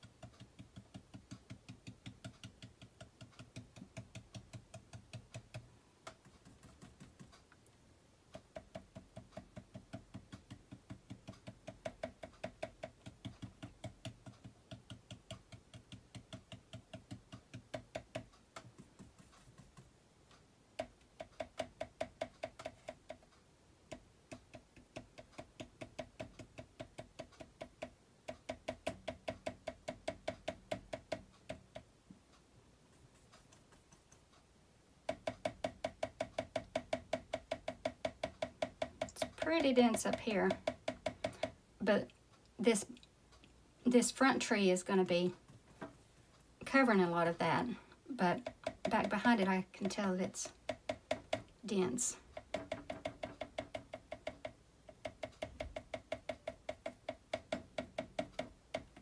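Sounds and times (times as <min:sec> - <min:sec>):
brush tapping on canvas: 0:00.0 - 0:07.6, 0:08.3 - 0:20.0, 0:20.8 - 0:31.9, 0:32.9 - 0:34.4, 0:35.0 - 0:42.0, 0:45.0 - 0:59.0.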